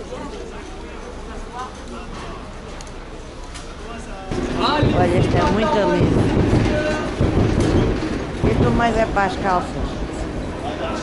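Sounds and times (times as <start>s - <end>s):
faint train whine: 0.0s - 11.0s
train wheels rumbling on rails: 4.3s - 11.0s.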